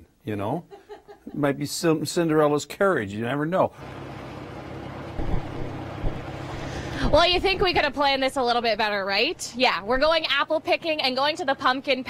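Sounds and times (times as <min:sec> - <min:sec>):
low engine hum: 0:03.8 - 0:11.1
low rumbling gusts: 0:05.2 - 0:10.4.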